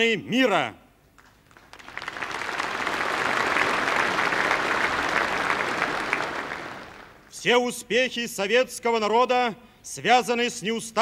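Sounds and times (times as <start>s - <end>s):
applause in a large hall: 1.1s - 7.4s.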